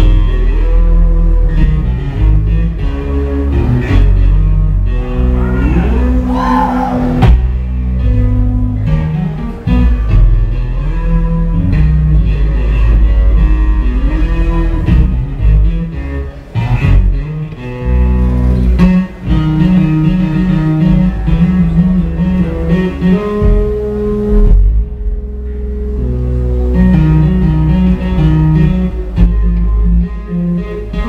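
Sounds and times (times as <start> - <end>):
electric bass guitar: 0.0 - 31.0.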